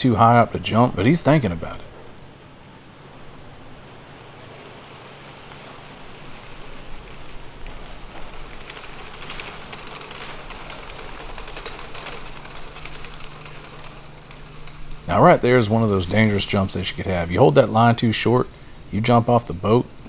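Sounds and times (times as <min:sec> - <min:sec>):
outdoor background hiss: 0:00.0 - 0:20.0.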